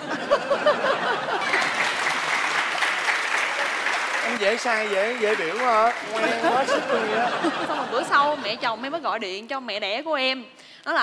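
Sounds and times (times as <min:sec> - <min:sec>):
audience applauding: 0:00.7 - 0:07.8.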